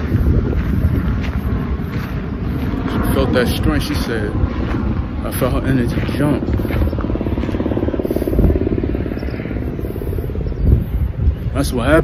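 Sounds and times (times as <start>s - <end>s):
low pulsing motor drone: 0.0s - 12.0s.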